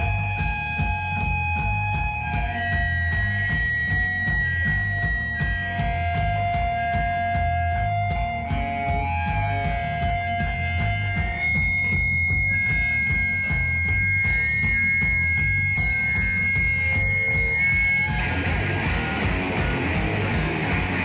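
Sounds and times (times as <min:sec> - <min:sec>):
bass guitar: 0:00.0 - 0:21.0
distorted electric guitars: 0:00.0 - 0:21.0
drum kit: 0:00.0 - 0:21.0.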